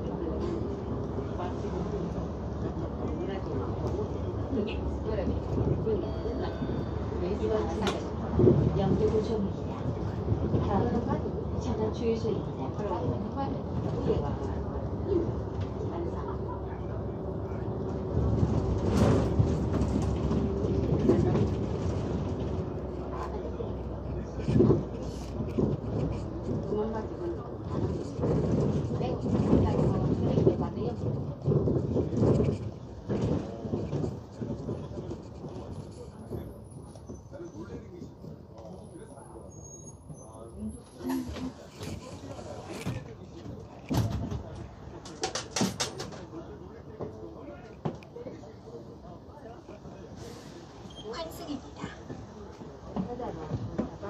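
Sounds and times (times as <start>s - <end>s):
bus engine and road rumble: 0.0s - 54.0s
faint voices: 0.0s - 54.0s.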